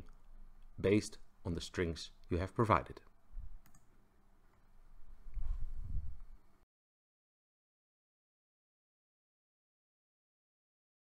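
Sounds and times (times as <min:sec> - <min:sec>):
computer mouse click: 0:03.6 - 0:03.9.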